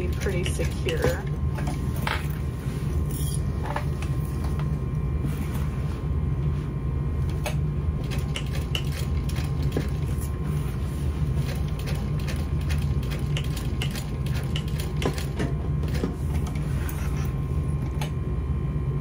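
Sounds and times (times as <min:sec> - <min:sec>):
sewing machine humming: 0:08.0 - 0:10.3, 0:11.0 - 0:18.0.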